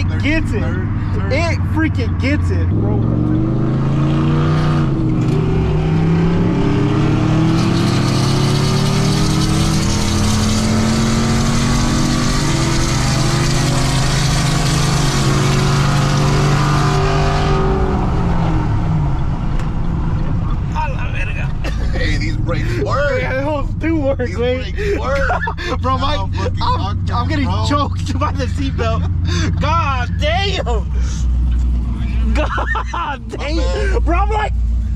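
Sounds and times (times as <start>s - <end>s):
truck engine at full throttle: 0.0s - 20.8s, 21.4s - 34.9s.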